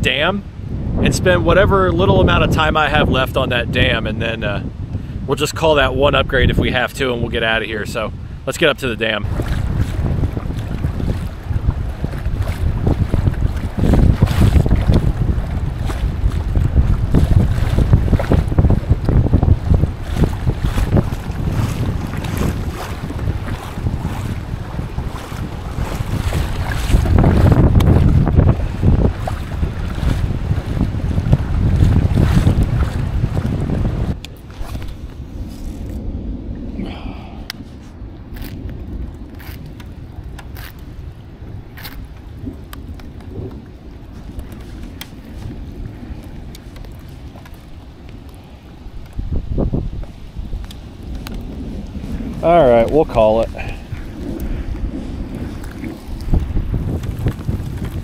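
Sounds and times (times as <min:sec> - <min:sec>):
water splashing along hull: 0:00.0 - 0:58.0
wind buffeting microphone: 0:00.0 - 0:58.0.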